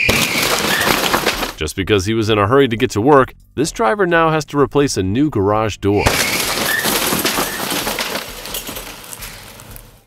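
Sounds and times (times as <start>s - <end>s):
crash with breaking glass: 0.0s - 1.6s, 6.0s - 10.0s
debris clattering: 0.0s - 1.6s, 6.0s - 10.0s.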